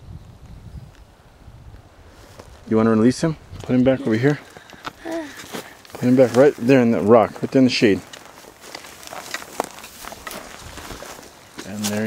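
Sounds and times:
footsteps on leaves and gravel: 0:02.1 - 0:02.7, 0:03.6 - 0:12.0.

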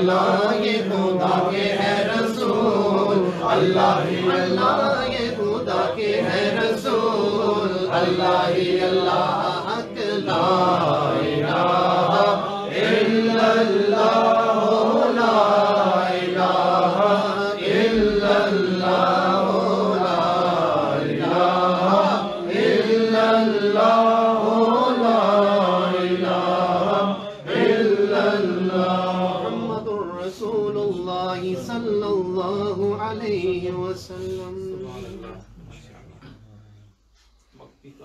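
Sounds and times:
men chanting: 0:00.0 - 0:35.6.

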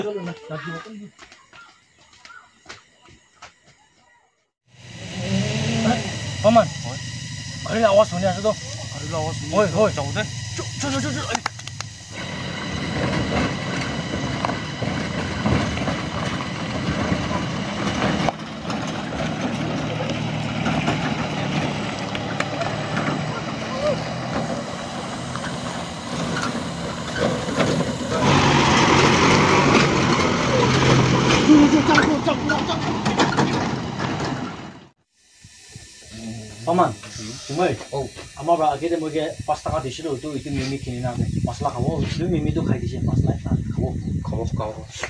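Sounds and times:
tyres on gravel road: 0:00.0 - 0:35.0
pickup truck engine running: 0:04.7 - 0:34.9.

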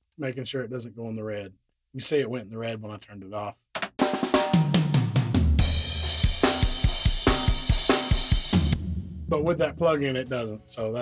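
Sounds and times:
rock drum track: 0:03.8 - 0:11.0
fast kick drum hits: 0:05.0 - 0:09.7.

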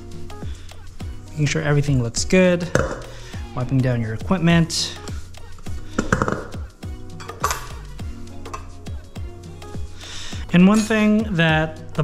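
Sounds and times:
background music with steady beat: 0:00.0 - 0:12.0
metal kitchen tools clinking: 0:07.2 - 0:07.9, 0:10.6 - 0:11.2.

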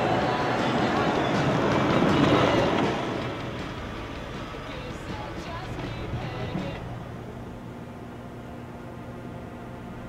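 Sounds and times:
minivan driving past: 0:00.0 - 0:10.0.

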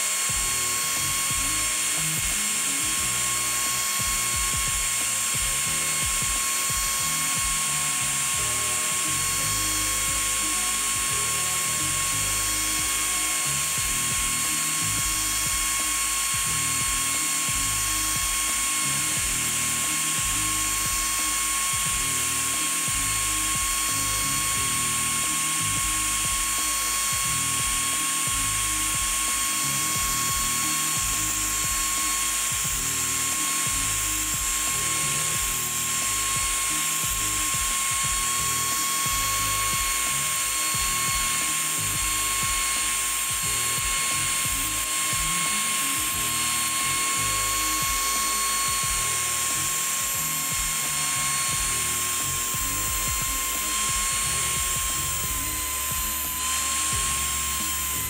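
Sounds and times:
cutting hiss: 0:00.0 - 0:58.0
router spindle whining: 0:00.0 - 0:58.0.

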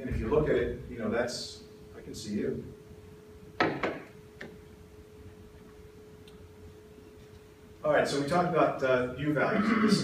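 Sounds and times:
faint steady hum: 0:00.0 - 0:10.0
clicks and knocks at a lectern: 0:03.6 - 0:04.6.

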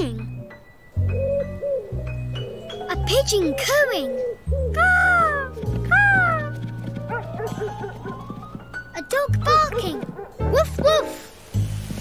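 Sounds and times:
gentle background music: 0:00.0 - 0:12.0
dog barking: 0:07.1 - 0:08.2, 0:09.9 - 0:10.6.

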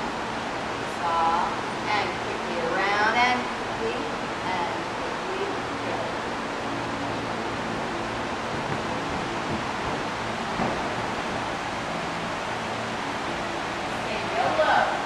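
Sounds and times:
steady background hiss: 0:00.0 - 0:15.0
soft thump: 0:08.5 - 0:11.0.

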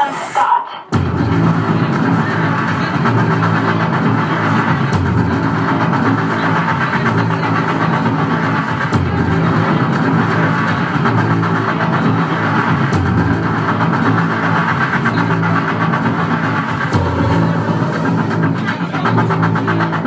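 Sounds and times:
noisy distorted wash: 0:00.0 - 0:20.0
loud drone of low tones: 0:00.9 - 0:20.0.

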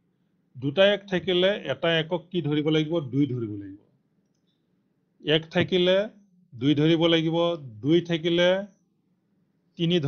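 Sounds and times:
man speaking: 0:00.6 - 0:03.8, 0:05.2 - 0:08.7, 0:09.8 - 0:10.0.

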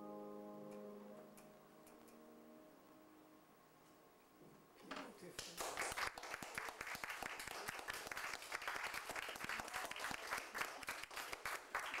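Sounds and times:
audience applauding: 0:05.4 - 0:12.0.

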